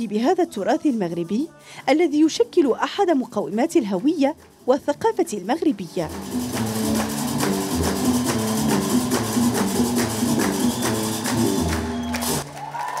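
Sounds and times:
plucked bass lute: 4.6s - 12.4s.

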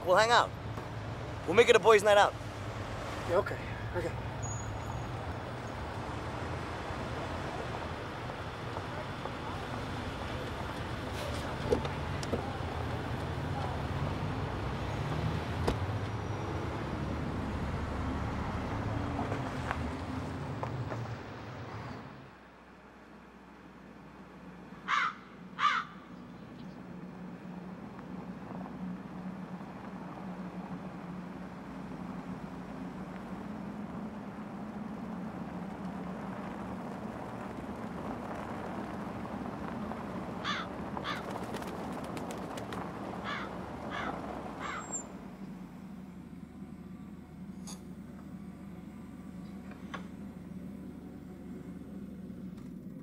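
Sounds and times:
low steady rumble: 23.3s - 53.0s
crow cawing: 24.8s - 26.0s, 40.4s - 41.3s, 43.2s - 44.9s.

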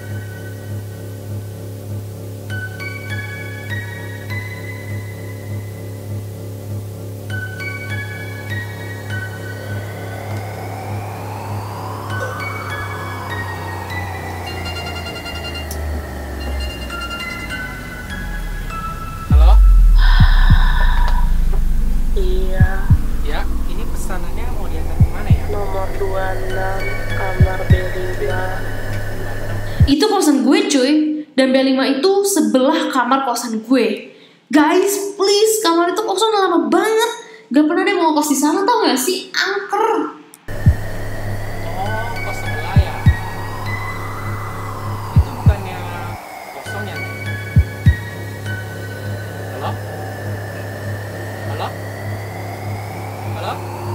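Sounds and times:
low drone: 5.4s - 29.9s, 40.4s - 53.9s
thin steady high tone: 7.3s - 30.0s, 40.5s - 53.9s
high held notes: 7.6s - 30.0s, 40.4s - 53.9s
deep bass hit dropping in pitch: 17.9s - 29.9s, 40.5s - 46.2s.

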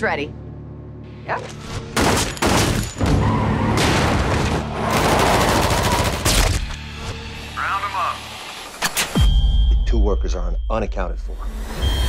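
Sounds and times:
rapid gunfire: 4.8s - 6.4s.

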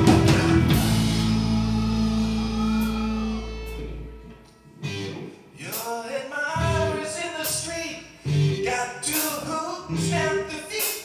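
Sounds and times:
bass and guitar ringing chord: 0.0s - 5.4s, 6.6s - 8.7s
bending electric guitar line: 0.0s - 5.7s, 6.5s - 10.7s.

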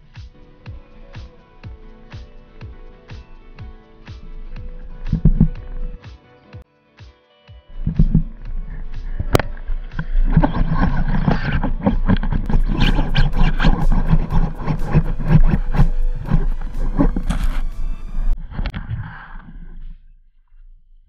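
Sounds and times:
crackling and clicking underwater: 7.9s - 18.9s.

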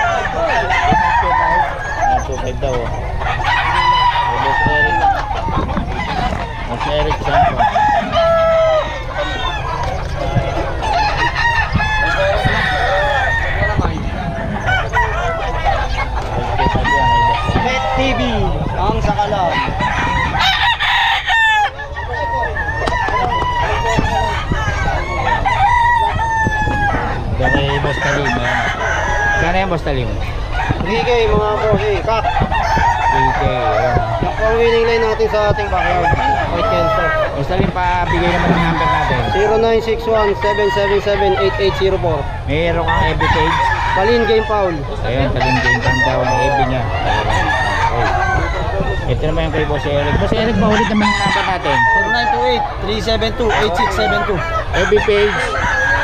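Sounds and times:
roosters clucking: 0.0s - 56.0s
roosters crowing: 0.0s - 56.0s.

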